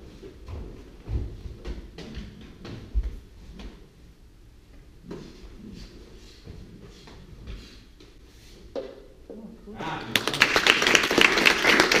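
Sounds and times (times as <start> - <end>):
people clapping: 9.9 - 12.0.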